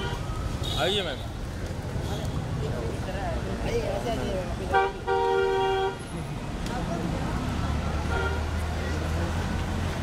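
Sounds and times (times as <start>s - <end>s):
street traffic drone: 0.0s - 10.0s.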